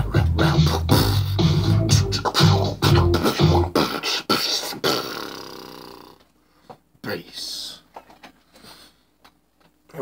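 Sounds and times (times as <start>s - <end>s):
beatboxing hissing hits: 0.0s - 6.2s
beatboxed long pitched tone: 0.0s - 6.3s.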